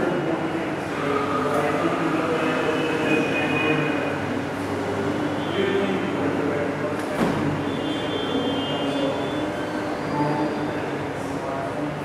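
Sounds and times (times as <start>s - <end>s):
faint murmuring voices: 0.0s - 12.0s.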